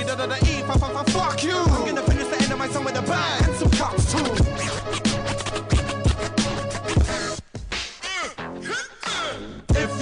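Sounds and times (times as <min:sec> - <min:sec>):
hip hop beat: 0:00.0 - 0:10.0
turntable scratching: 0:00.5 - 0:10.0
heavy kick drum: 0:09.7 - 0:10.0.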